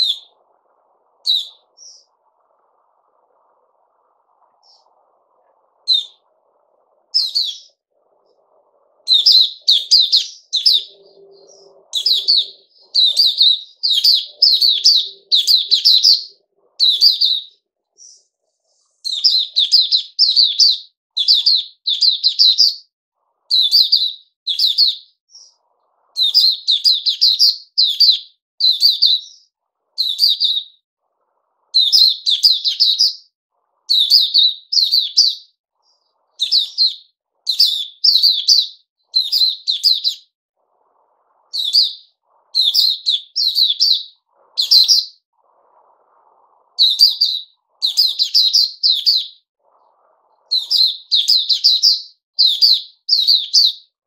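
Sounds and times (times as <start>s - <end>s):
bird twittering: 0.0s - 0.5s, 1.2s - 2.3s, 4.4s - 5.1s, 5.8s - 6.3s, 7.0s - 7.8s, 9.0s - 18.3s, 19.0s - 22.9s, 23.5s - 30.8s, 31.7s - 40.3s, 41.5s - 45.2s, 46.8s - 53.9s.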